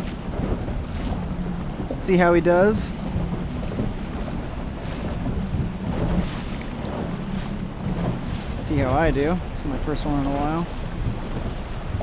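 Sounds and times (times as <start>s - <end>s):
outboard motor running: 0.0s - 12.0s
water slapping hull: 0.0s - 12.0s
wind buffeting microphone: 0.0s - 12.0s.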